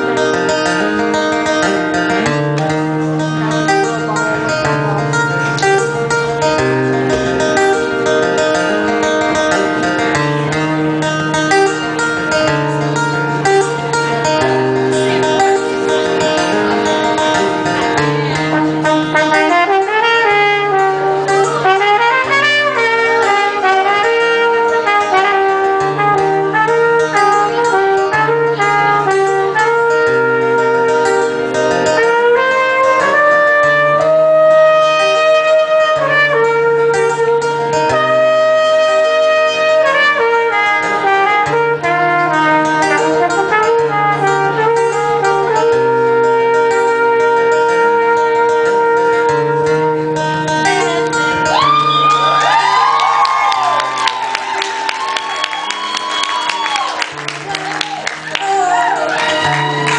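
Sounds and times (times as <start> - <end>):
trumpet solo: 18.4 - 59.9
audience whooping: 51.4 - 59.9.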